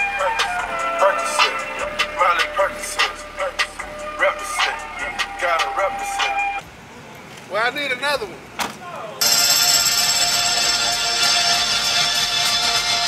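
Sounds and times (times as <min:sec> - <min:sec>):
loud music: 0:00.0 - 0:06.6, 0:09.2 - 0:13.0.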